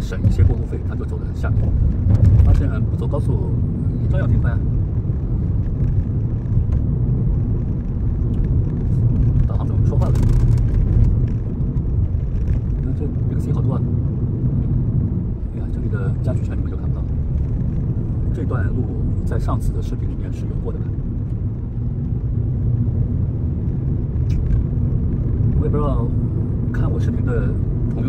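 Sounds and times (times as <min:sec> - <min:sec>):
car engine and tyre rumble: 0:00.0 - 0:28.0.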